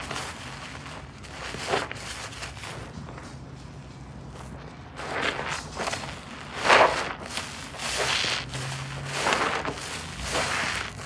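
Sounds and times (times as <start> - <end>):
sponge squishing in suds: 5.0 - 11.0.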